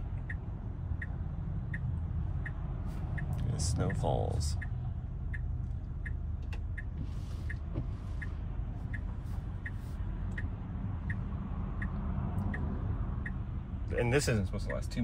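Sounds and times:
car turn signal ticking: 0.0s - 13.6s
low rumble in car cabin: 0.0s - 15.0s.

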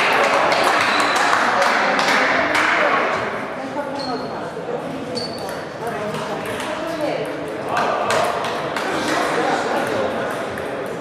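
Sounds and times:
table tennis ball hits: 0.0s - 3.2s, 7.7s - 9.0s
voices chattering: 0.0s - 11.0s.

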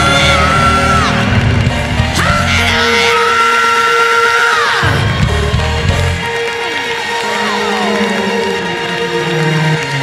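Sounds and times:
bass notes: 0.0s - 3.3s, 4.8s - 6.4s
gospel choir singing: 0.0s - 5.2s, 6.7s - 10.0s.

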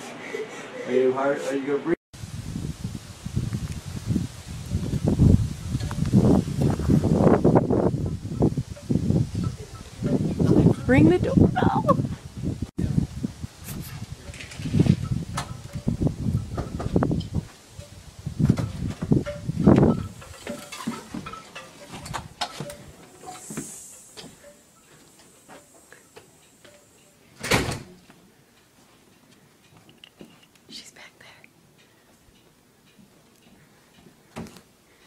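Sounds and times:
door clunk: 27.4s - 28.0s.

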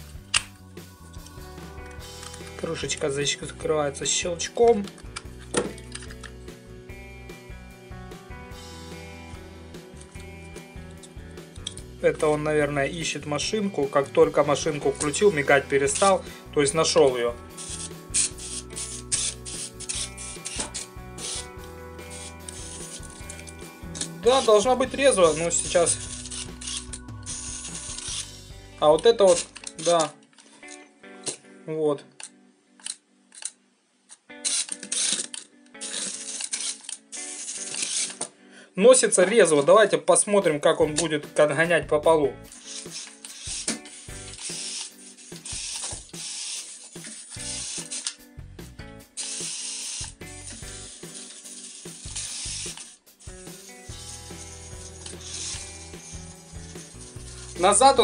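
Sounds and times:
toy car electric motor whirring: 17.2s - 28.4s, 34.4s - 38.3s, 42.5s - 48.2s, 49.2s - 58.0s.

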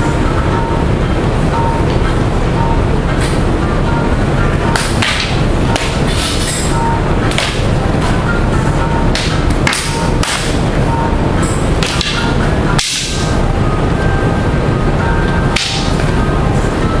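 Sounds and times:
loud background noise: 0.0s - 17.0s
sparring sticks striking: 3.1s - 13.5s, 15.5s - 16.2s.

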